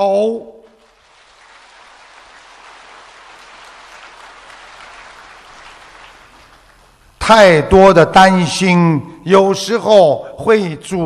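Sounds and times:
audience applauding: 0.7 - 7.1.

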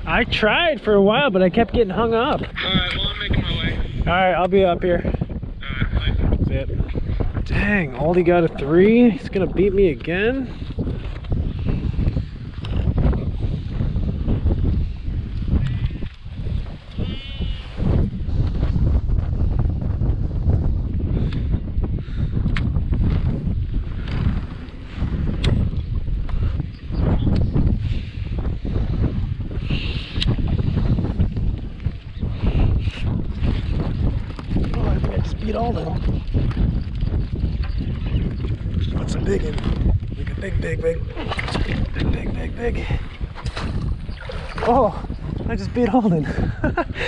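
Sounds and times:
wind rumbling on microphone: 0.0 - 47.0
sheep bleating: 17.0 - 17.7.

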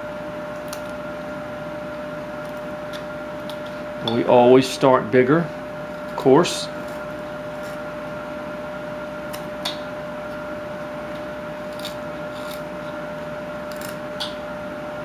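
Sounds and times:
steady background hum: 0.0 - 15.0
knife scraping wood: 6.8 - 7.9, 11.6 - 14.0.

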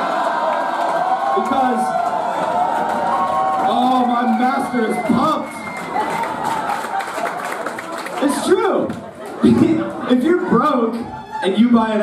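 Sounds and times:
people clapping: 0.0 - 10.3
crowd voices: 0.0 - 12.0.

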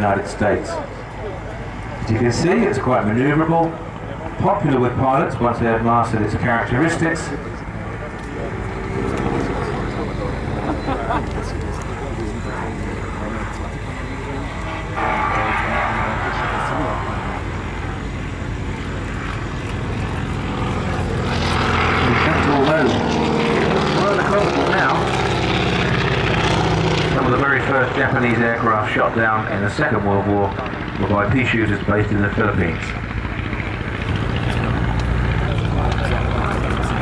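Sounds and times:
propeller aircraft engine droning: 0.0 - 37.0.

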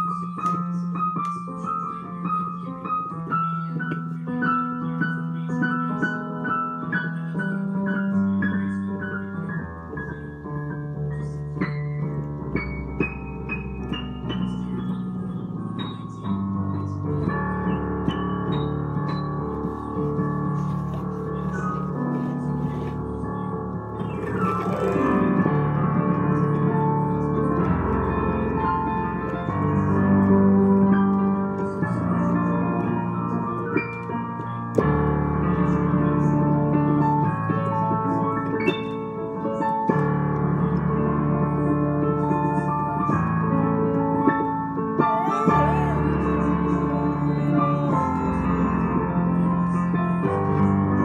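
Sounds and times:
digital piano chords: 0.0 - 51.0.

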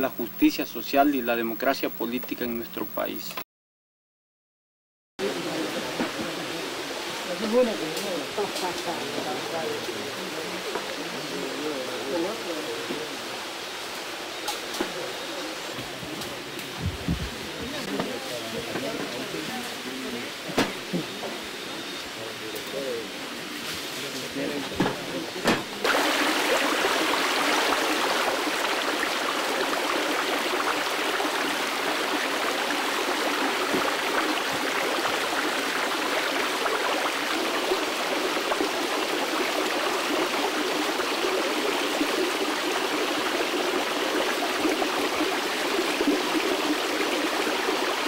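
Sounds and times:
water rushing over rocks: 25.4 - 48.0.

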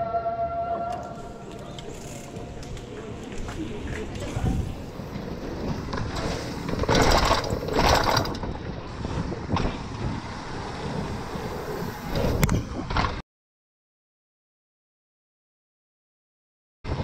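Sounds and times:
bike tyres on paving stones: 1.0 - 13.2
wind on microphone: 1.1 - 13.0
bike chain and frame rattle: 1.4 - 8.8.

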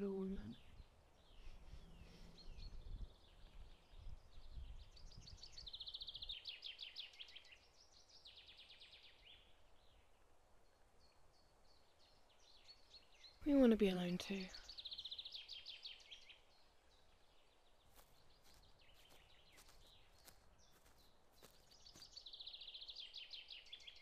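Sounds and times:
wind rumble on microphone: 0.4 - 6.4
bird chirps and trills: 11.0 - 17.0.

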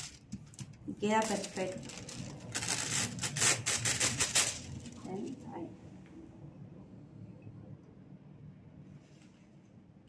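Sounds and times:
metallic foil crinkling: 0.0 - 5.1.

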